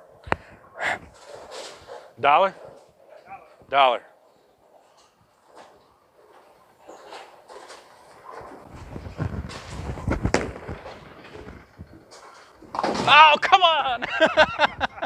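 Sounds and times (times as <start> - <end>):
bowling pins clattering: 4.2 - 15.0.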